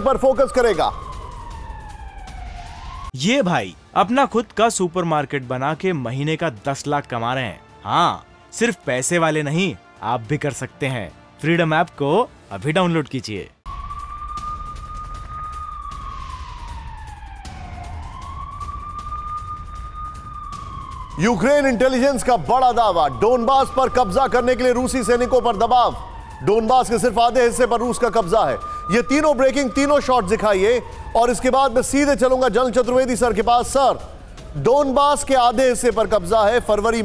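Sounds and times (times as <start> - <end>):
siren gliding in pitch: 0.0 - 3.2, 13.7 - 37.0.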